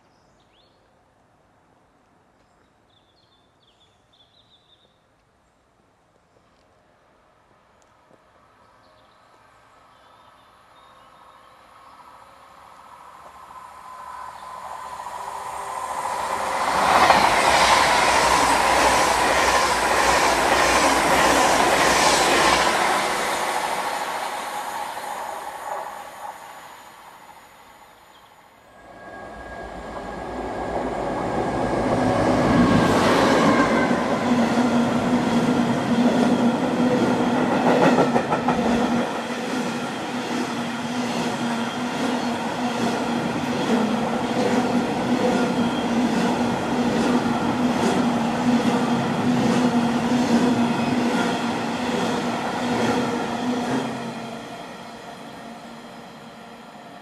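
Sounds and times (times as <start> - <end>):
electric train passing at speed: 9.4 - 57.0
diesel locomotive passing: 11.7 - 57.0.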